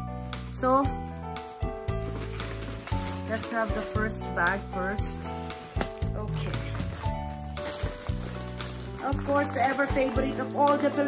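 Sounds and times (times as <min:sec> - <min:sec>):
background music with low notes: 0:00.0 - 0:11.0
plastic bag rustling: 0:00.4 - 0:11.0.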